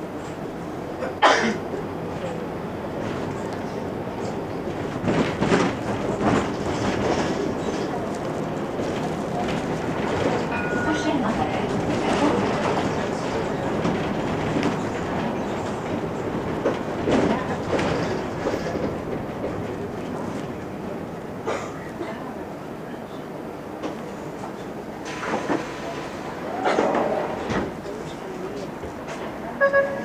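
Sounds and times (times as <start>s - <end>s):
bus road and engine rumble: 0.0s - 30.0s
interior rattles and clatter: 4.1s - 20.7s.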